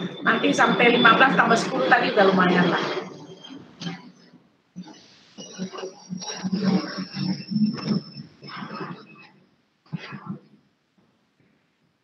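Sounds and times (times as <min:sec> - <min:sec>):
indistinct voice over video call: 0:00.0 - 0:04.0, 0:04.9 - 0:09.3.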